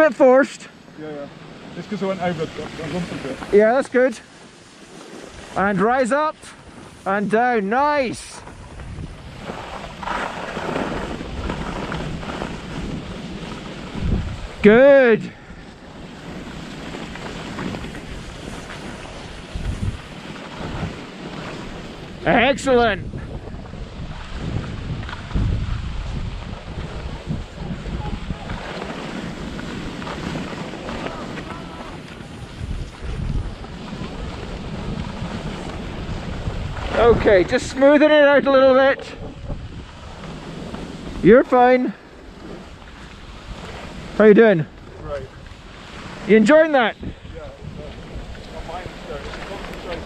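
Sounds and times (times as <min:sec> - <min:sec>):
skis sliding on packed snow: 0:00.0 - 0:50.0
wind buffeting microphone: 0:06.6 - 0:50.0.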